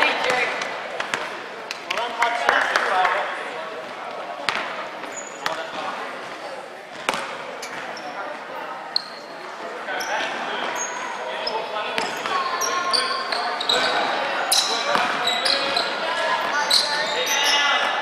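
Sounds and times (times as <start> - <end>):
sneaker squeaks: 4.5 - 18.0.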